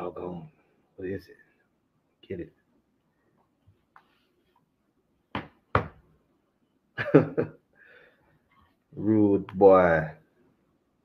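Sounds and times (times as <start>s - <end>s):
sharp knocks: 5.3s - 6.0s.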